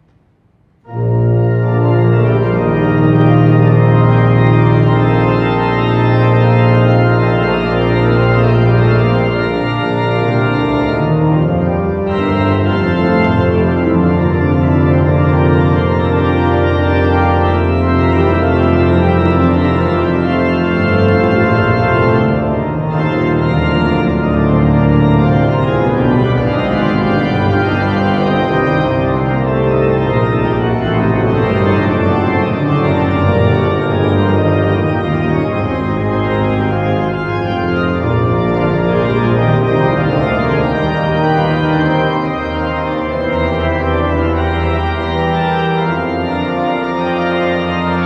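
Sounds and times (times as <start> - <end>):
pipe organ chords: 0.0 - 48.0.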